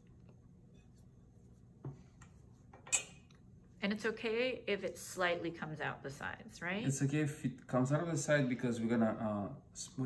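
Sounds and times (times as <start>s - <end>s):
metal spatula clinking on counter: 2.8s - 3.3s.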